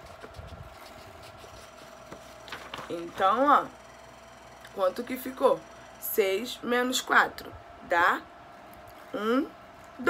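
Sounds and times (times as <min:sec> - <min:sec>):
paper handled near microphone: 0:00.0 - 0:03.3
faint steady hum: 0:00.0 - 0:10.0.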